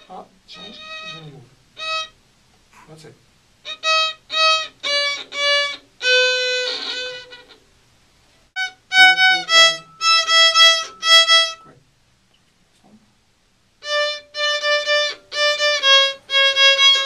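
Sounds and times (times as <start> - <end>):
violin bowed notes: 0.0 - 2.2, 3.7 - 7.6, 8.6 - 11.8, 13.8 - 17.0.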